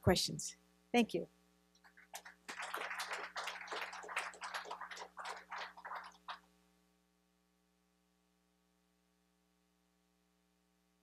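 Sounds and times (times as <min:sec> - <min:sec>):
small audience applause: 0:01.8 - 0:06.5.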